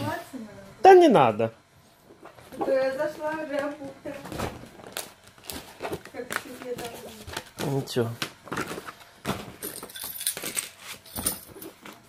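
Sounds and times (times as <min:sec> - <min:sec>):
paper cards rustling: 0:04.8 - 0:09.5.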